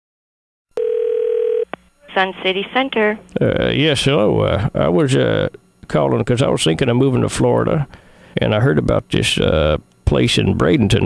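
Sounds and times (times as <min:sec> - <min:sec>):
phone line click: 0:00.8 - 0:01.8
telephone tone: 0:00.8 - 0:01.8.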